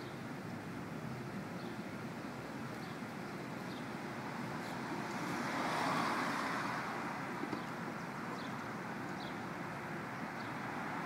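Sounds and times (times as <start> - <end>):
road traffic hum: 0.0 - 11.0
vehicle passing: 4.6 - 7.4.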